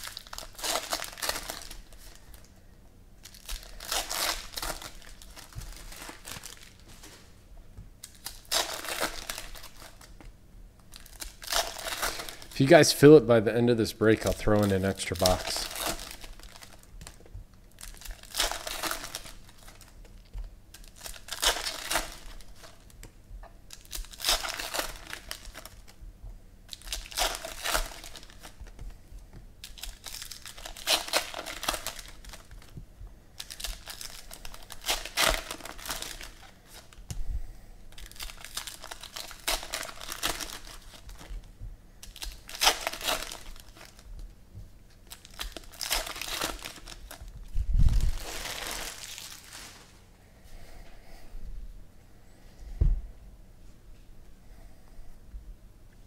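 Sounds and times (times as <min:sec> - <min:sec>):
foil wrappers crinkling and tearing: 0:00.0 - 0:02.5, 0:03.2 - 0:07.3, 0:08.0 - 0:10.2, 0:10.8 - 0:23.1, 0:23.7 - 0:26.0, 0:26.7 - 0:29.0, 0:29.6 - 0:37.2, 0:37.9 - 0:44.2, 0:44.9 - 0:50.0.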